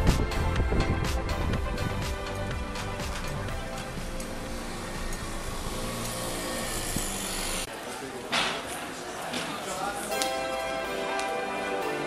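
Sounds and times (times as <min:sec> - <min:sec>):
car engine and road noise: 0:00.0 - 0:07.7.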